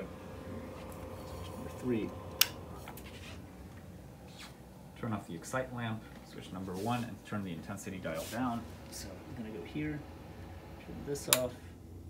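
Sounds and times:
faint steady hum: 0:00.0 - 0:12.0
rocker switch click: 0:11.3 - 0:11.5.

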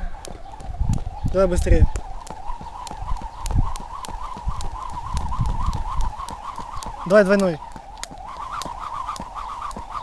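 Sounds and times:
skipping rope slapping asphalt: 0:00.0 - 0:10.0.

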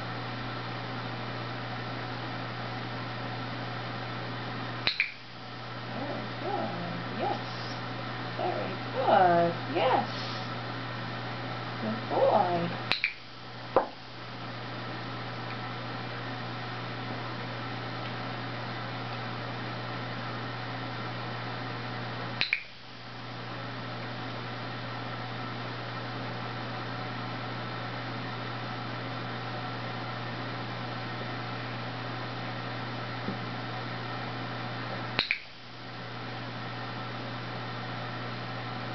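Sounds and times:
low hum and hiss: 0:00.0 - 0:38.9
dog-training clicker double snap: 0:04.8 - 0:05.2, 0:12.9 - 0:13.2, 0:22.4 - 0:22.8, 0:35.2 - 0:35.5
soft low voice sounds: 0:05.9 - 0:10.6, 0:11.8 - 0:12.8.

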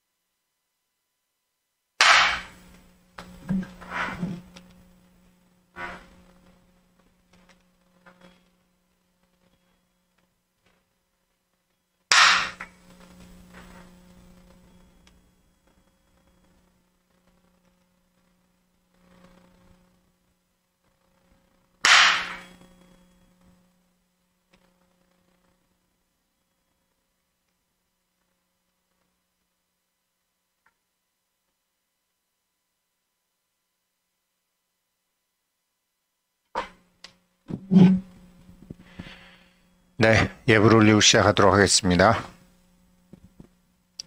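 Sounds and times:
sharp crack: 0:02.0 - 0:03.3, 0:12.1 - 0:12.8, 0:21.8 - 0:22.5.

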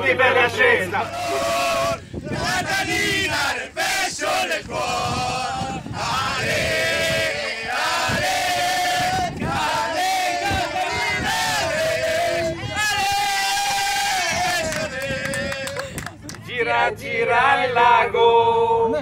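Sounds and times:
crowd chanting in unison: 0:00.0 - 0:19.0.

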